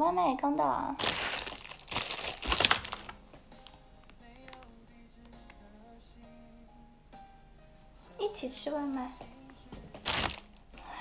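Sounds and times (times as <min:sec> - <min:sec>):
takeout bag rustling: 0:01.0 - 0:04.7, 0:09.9 - 0:11.0.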